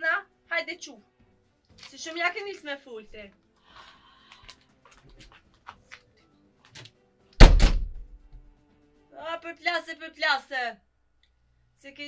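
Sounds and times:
faint background music: 0.0s - 12.0s
loud heavy thud: 7.4s - 8.4s.

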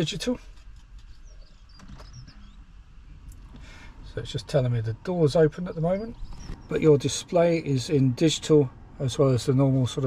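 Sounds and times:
small birds chirping: 0.0s - 10.0s
steady low hum: 0.0s - 10.0s.

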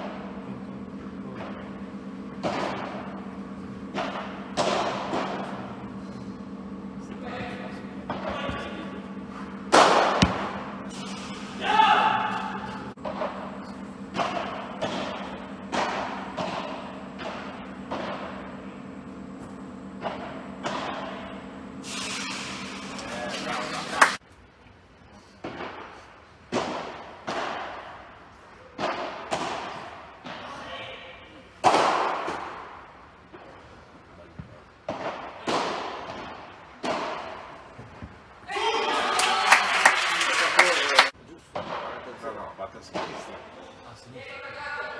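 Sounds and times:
padel ball hits: 9.7s - 10.7s
ball bouncing off glass walls: 9.7s - 10.8s
ball hits ringing in hall: 9.7s - 18.7s
spectators cheering: 22.9s - 24.2s, 38.5s - 41.1s.

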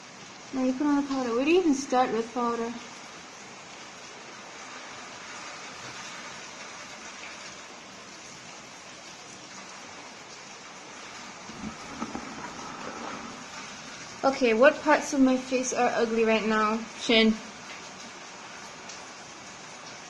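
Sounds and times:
faint soft taps or rustles: 11.5s - 13.0s.

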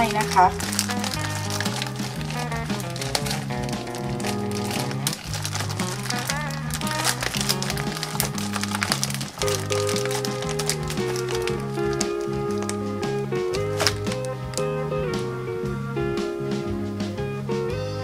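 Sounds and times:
instrumental background music: 0.0s - 18.0s.

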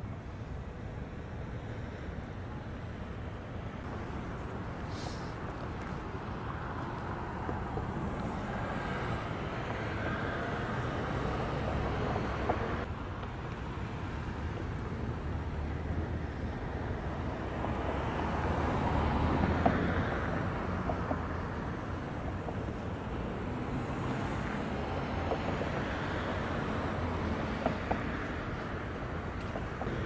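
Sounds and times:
cars driving past: 0.0s - 30.0s.

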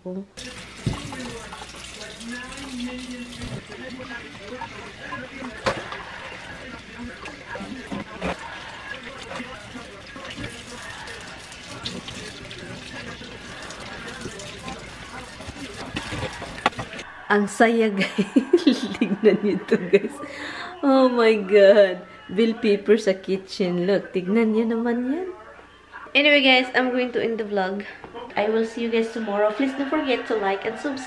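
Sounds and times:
faucet running into flowerpot: 0.4s - 17.0s.

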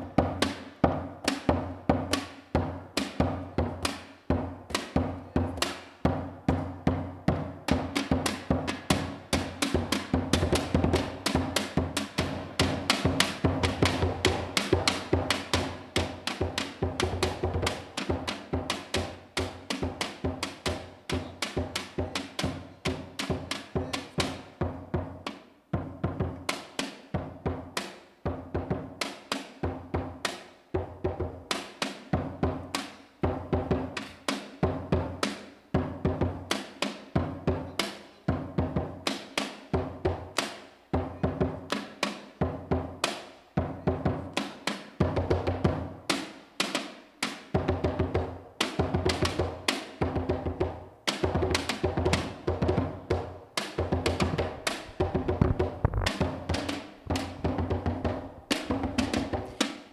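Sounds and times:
tin can drum beaten: 0.0s - 25.2s, 44.0s - 59.9s
plastic barrel drum struck: 50.1s - 59.7s.

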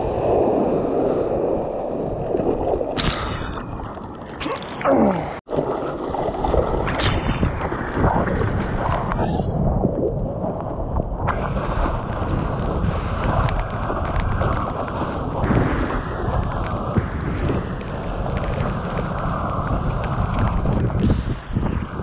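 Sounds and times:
water rushing under surfboard: 0.0s - 22.0s
wind buffeting camera: 5.8s - 22.0s.

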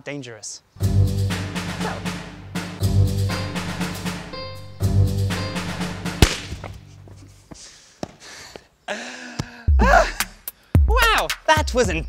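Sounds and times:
dramatic countdown music: 0.8s - 6.2s
balloon bursting bang: 6.2s - 6.8s.

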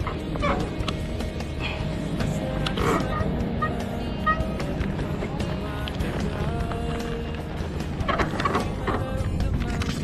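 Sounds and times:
bike rattling and knocking: 0.0s - 1.0s, 4.2s - 10.0s
tyres crunching on gravel: 0.0s - 10.0s.

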